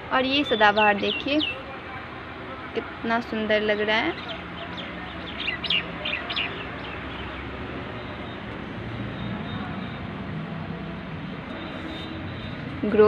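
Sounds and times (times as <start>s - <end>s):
drawn-out bird call: 0.0s - 10.2s
steady background noise: 0.0s - 13.0s
small birds chirping: 0.1s - 1.8s, 2.8s - 10.2s, 11.3s - 13.0s.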